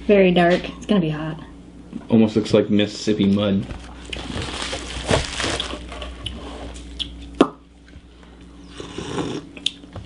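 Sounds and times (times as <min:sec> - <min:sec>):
slurping from mugs: 0:08.7 - 0:09.5.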